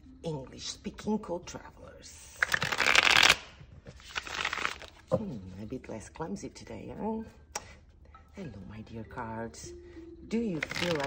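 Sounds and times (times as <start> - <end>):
cards riffle-shuffled: 2.4 - 5.1, 10.6 - 11.0.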